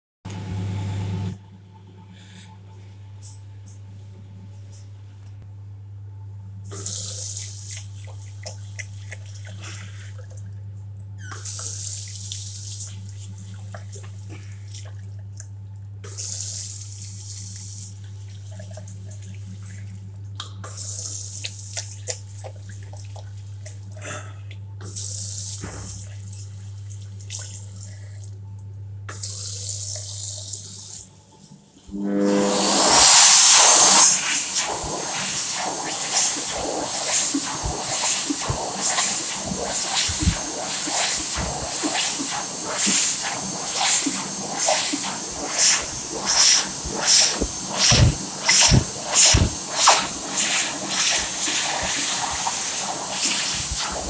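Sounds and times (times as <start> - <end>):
steady low hum: 31.1 - 54.0.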